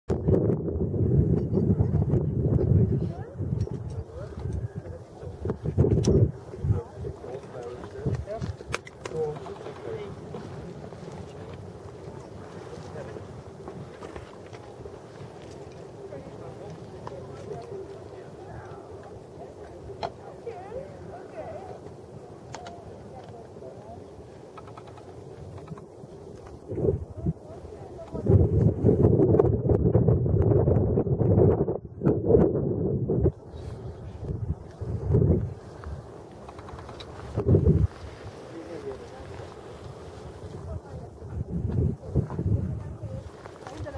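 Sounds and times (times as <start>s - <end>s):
wind on microphone: 0.1s - 43.9s
people chattering: 1.5s - 28.8s, 35.5s - 43.9s.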